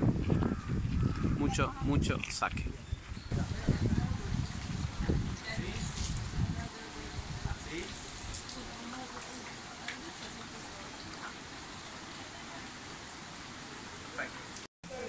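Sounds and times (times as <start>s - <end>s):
water trickling and splashing: 3.1s - 15.0s
people talking: 3.3s - 11.5s.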